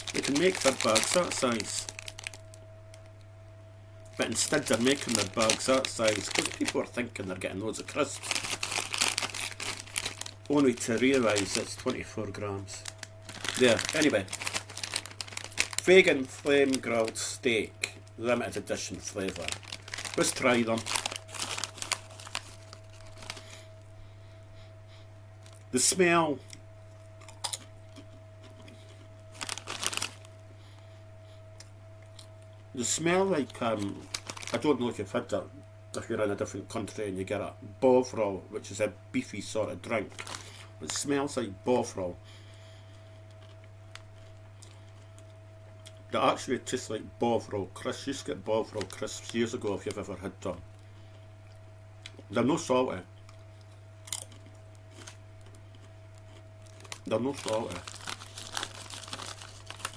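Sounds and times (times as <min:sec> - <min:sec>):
crisps crunching: 0:00.0 - 0:03.2, 0:04.1 - 0:23.9, 0:26.5 - 0:30.4, 0:31.6 - 0:35.1, 0:39.9 - 0:41.2, 0:42.9 - 0:46.0, 0:47.8 - 0:50.2, 0:53.2 - 0:59.9
low electrical hum: 0:00.0 - 0:59.9.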